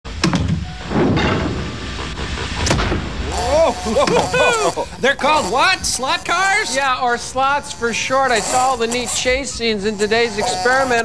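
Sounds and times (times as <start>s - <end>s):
mechanical clunks and knocks: 0.1s - 3.4s
sliding hatch doors opening: 0.1s - 3.4s.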